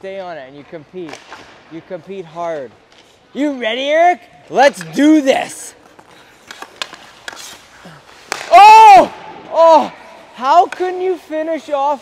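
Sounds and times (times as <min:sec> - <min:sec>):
sharp crack of stick on puck: 0:01.0 - 0:01.7, 0:05.9 - 0:09.5
hockey stick tapping puck on ice: 0:05.8 - 0:07.6, 0:08.2 - 0:08.6, 0:10.5 - 0:11.5
person shouting oh: 0:08.5 - 0:10.0.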